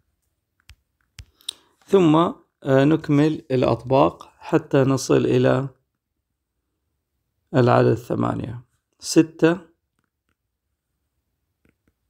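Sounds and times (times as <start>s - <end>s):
man speaking: 1.9s - 5.8s, 7.5s - 9.8s.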